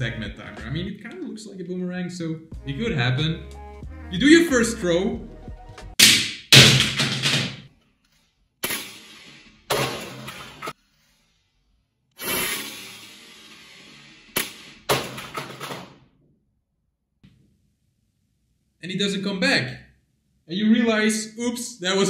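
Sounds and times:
music: 0.0s - 6.0s.

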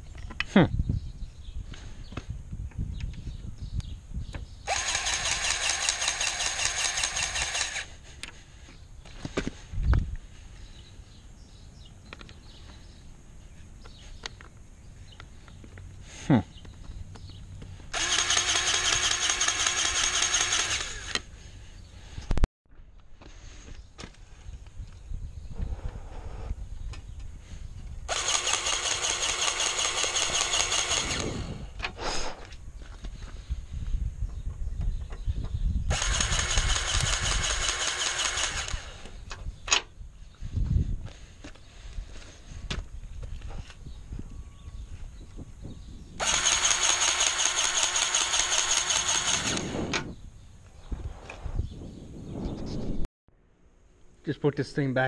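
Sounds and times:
grease gun motor whirring: 4.7s - 7.9s, 17.9s - 21.3s, 28.1s - 31.6s, 35.9s - 39.2s, 46.2s - 50.1s
sharp clicks: 28.1s - 31.9s, 35.9s - 39.8s, 46.2s - 50.1s.

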